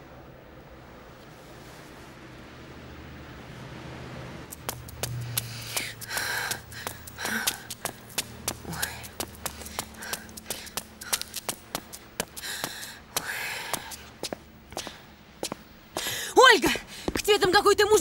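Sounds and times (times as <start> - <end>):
hard-soled footsteps on stairs: 4.5 - 16.1
person breathing loudly: 5.2 - 11.4, 12.3 - 14.1.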